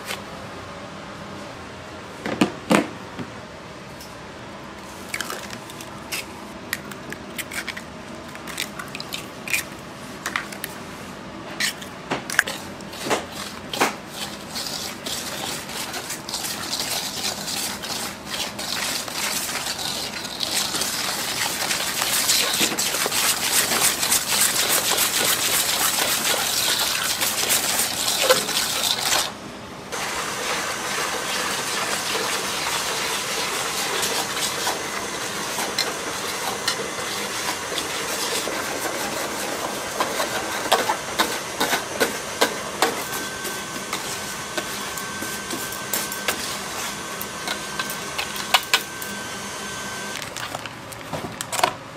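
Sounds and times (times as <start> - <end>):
whisk rattling in metal bowl: 12.4 - 29.3.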